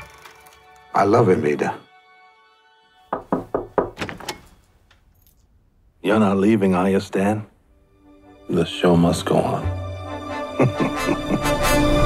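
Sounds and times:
knocking on wooden door: 3.1 - 4.3.

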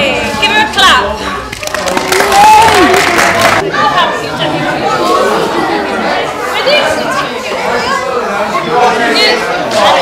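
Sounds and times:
group chatter: 0.0 - 10.0.

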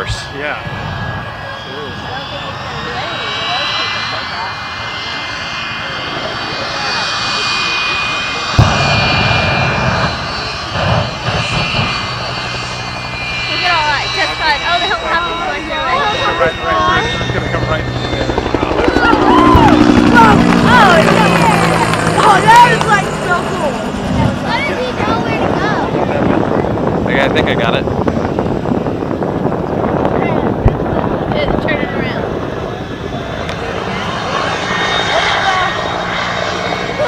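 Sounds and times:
voices: 0.0 - 28.0, 29.8 - 37.0
helicopter engine and rotor drone: 0.0 - 37.0
jet turbine whine: 0.0 - 37.0
loud bang: 8.5 - 17.0.

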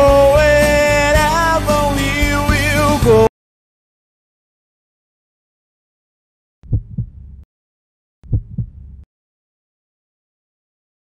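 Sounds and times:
heartbeat thump: 6.6 - 7.4, 8.2 - 9.1
short low rumble: 8.3 - 9.1.

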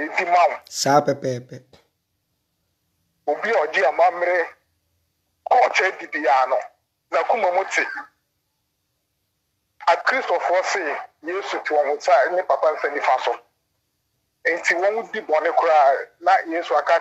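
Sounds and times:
man talking through phone speaker: 0.0 - 1.8, 3.3 - 4.6, 5.5 - 8.2, 9.8 - 13.4, 14.5 - 17.0.

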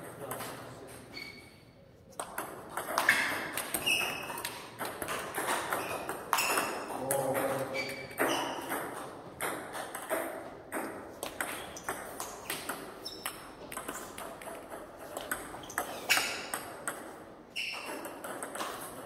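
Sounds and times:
table tennis ball clicks: 2.2 - 7.3.

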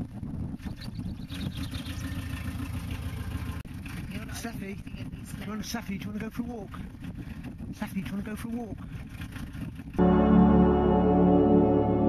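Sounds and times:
van engine idling: 1.5 - 5.3.

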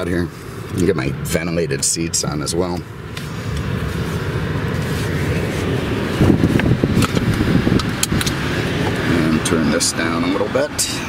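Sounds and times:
car engine rumble in cabin: 0.0 - 11.0.

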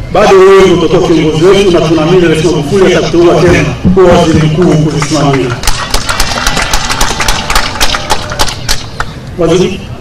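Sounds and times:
sharp hand claps: 4.9 - 9.2.

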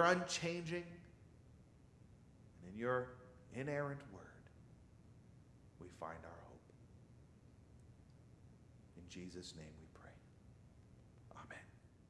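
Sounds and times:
low room hum: 0.0 - 12.0
man speaking softly: 2.6 - 4.5, 5.8 - 6.7, 9.0 - 10.4, 11.3 - 11.8.

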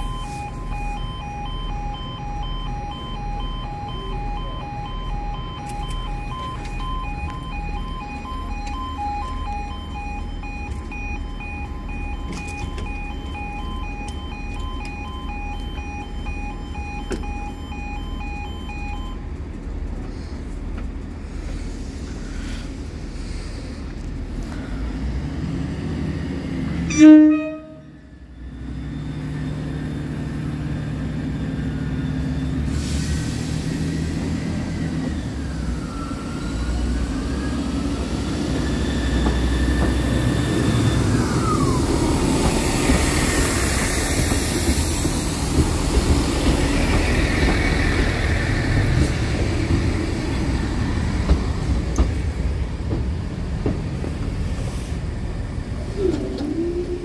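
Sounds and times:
train engine and wheel noise: 0.0 - 57.0
train horn blast: 26.9 - 28.0
thin squealing tones: 55.9 - 57.0.

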